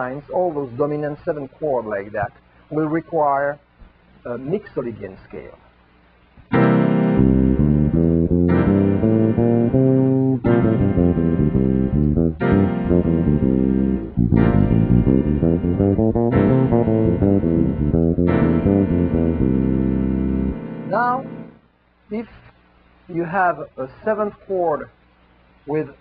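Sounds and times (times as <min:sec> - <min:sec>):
electric bass playing: 0:06.5 - 0:21.6
chords: 0:06.5 - 0:21.7.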